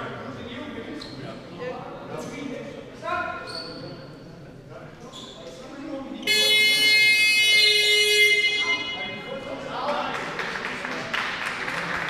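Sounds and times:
voices in a hall: 0.0 - 12.0
scoreboard horn blast: 6.2 - 9.2.

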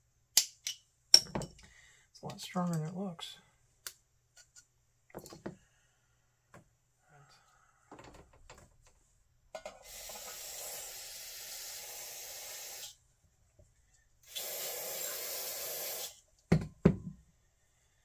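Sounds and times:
clicks and knocks handling parts: 3.8 - 5.6, 7.9 - 9.8
aerosol spray hissing: 9.8 - 13.0, 14.2 - 16.2.

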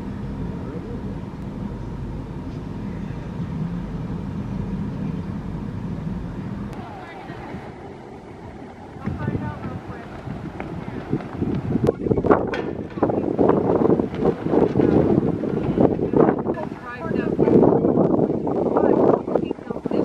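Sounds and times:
low background rumble: 0.0 - 20.0
indistinct voices: 6.6 - 11.2.

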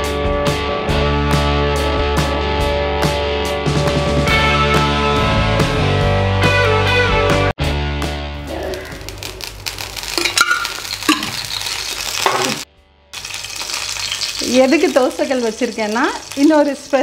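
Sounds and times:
background music: 0.0 - 9.8
oil sizzling in a hot pan: 8.7 - 17.0.

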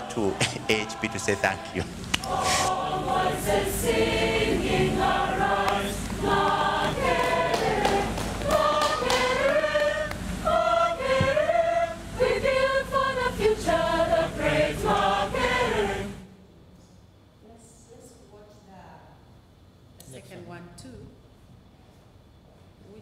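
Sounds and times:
choir singing: 0.0 - 16.3.

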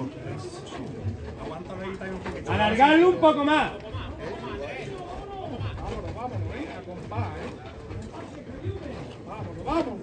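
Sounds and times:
background chatter: 0.0 - 10.0.

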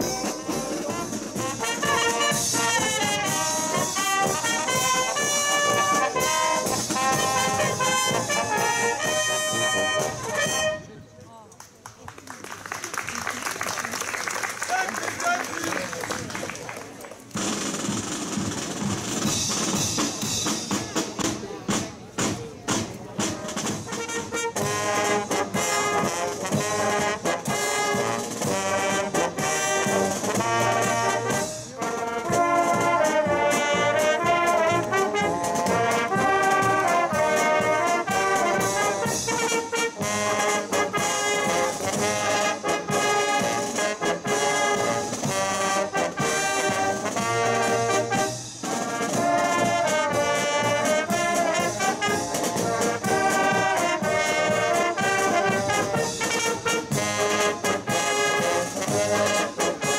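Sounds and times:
brass band playing a march: 0.0 - 11.0, 17.3 - 59.9.

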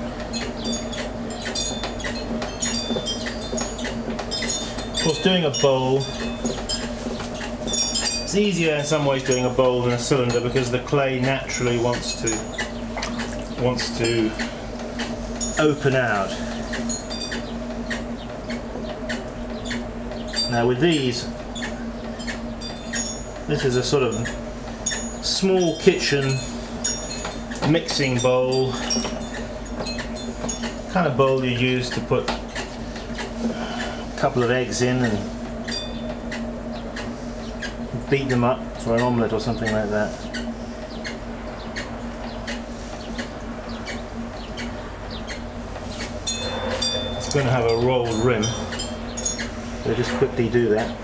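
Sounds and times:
potter's wheel humming: 0.0 - 51.0.

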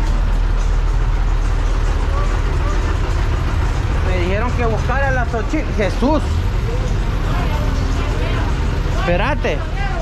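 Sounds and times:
bus engine rumbling: 0.0 - 10.0
street noise: 0.0 - 10.0
faint voices: 1.8 - 10.0.

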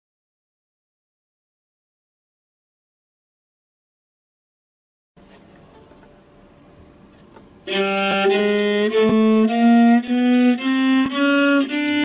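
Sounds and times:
viola playing chromatic scale: 7.6 - 12.0.

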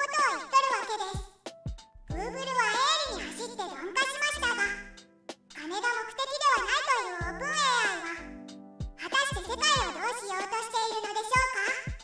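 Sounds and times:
high-pitched voice speaking: 0.0 - 1.2, 2.1 - 5.0, 5.6 - 8.3, 9.0 - 12.0.

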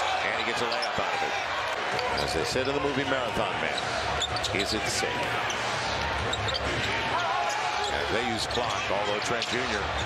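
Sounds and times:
hum of arena crowd: 0.0 - 10.0.

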